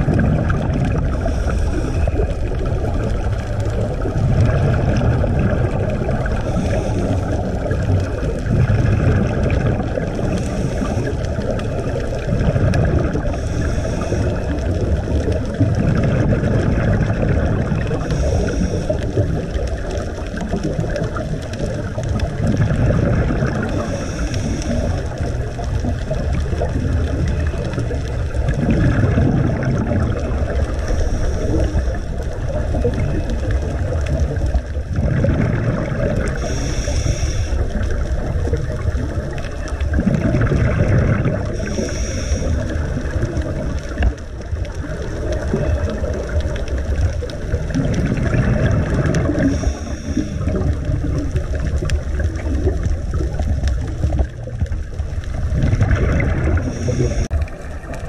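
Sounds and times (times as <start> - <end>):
exhaled bubbles: 0.0 - 58.0
low underwater water noise: 0.0 - 58.0
diver's regulator breathing: 0.7 - 15.6, 17.7 - 20.2, 21.0 - 53.0, 55.0 - 58.0.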